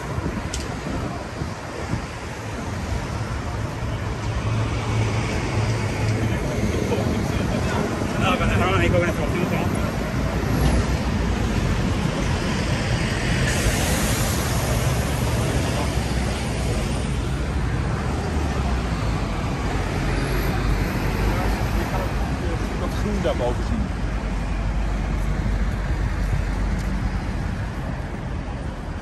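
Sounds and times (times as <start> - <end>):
passers-by voices: 0.0 - 29.0
passing cars and trucks: 0.0 - 29.0.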